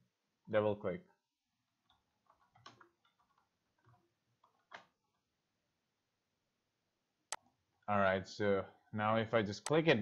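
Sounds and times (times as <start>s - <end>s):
keyboard typing: 1.8s - 5.2s.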